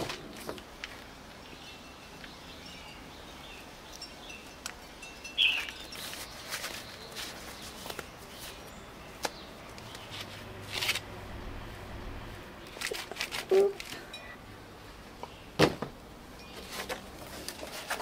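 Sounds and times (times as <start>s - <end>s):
gloves rustling and rubbing: 5.9s - 14.0s.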